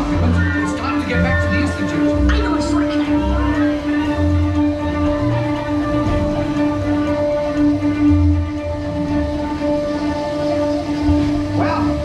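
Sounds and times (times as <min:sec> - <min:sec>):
ride vehicle rumbling on track: 0:00.0 - 0:12.0
steady droning tone: 0:00.0 - 0:12.0.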